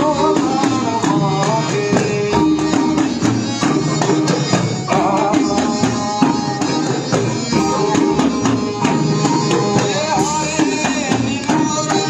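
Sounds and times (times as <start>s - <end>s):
guitar: 0.0s - 12.0s
hand drums beat: 0.0s - 12.0s
harmonium melody: 0.0s - 12.0s.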